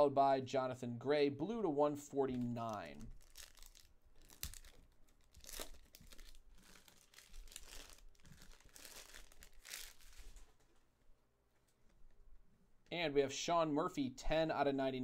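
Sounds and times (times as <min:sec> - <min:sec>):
foil wrapper tearing and crinkling: 0:02.3 - 0:10.6.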